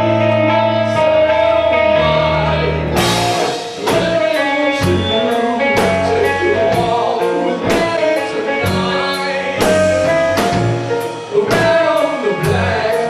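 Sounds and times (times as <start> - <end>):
live rock band playing: 0.0 - 13.0
drum and cymbal strokes: 3.0 - 6.4.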